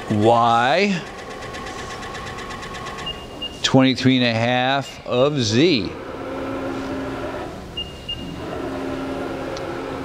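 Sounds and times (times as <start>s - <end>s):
milling machine whine and hum: 0.0s - 10.0s.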